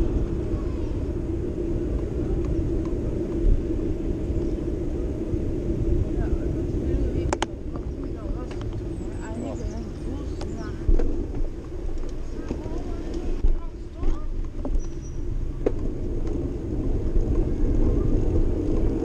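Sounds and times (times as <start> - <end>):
faint voices of passers-by: 0.0 - 19.0
wind rumble: 0.0 - 19.0.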